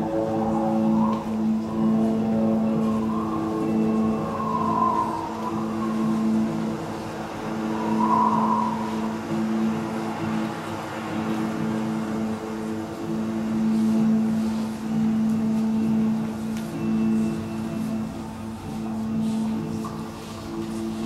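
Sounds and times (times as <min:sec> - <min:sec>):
higher wavering tone: 0:00.0 - 0:21.0
low ambient drone: 0:00.0 - 0:21.0.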